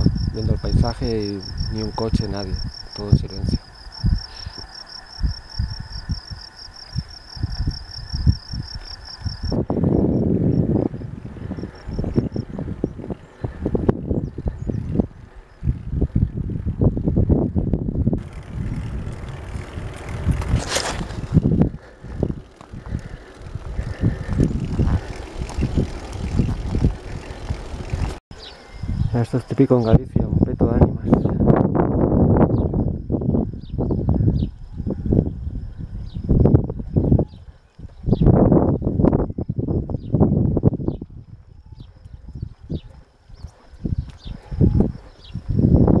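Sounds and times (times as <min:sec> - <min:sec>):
crickets chirping: 0:00.0 - 0:46.0
wind buffeting microphone: 0:00.0 - 0:46.0.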